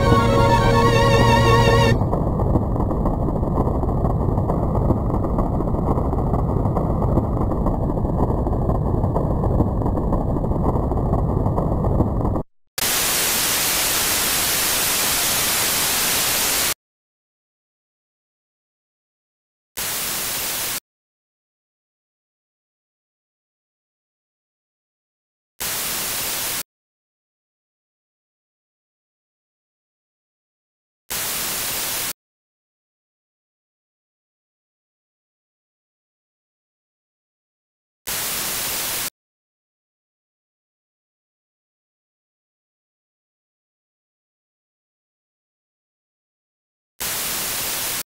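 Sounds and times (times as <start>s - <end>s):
tv static hiss: 12.8s - 16.8s, 19.8s - 20.8s, 25.6s - 26.6s, 31.1s - 32.1s, 38.1s - 39.1s, 47.0s - 48.0s.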